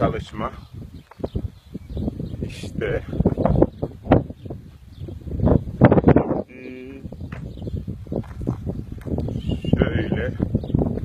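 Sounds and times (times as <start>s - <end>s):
scuffing and crackling noise: 8.1s - 9.4s.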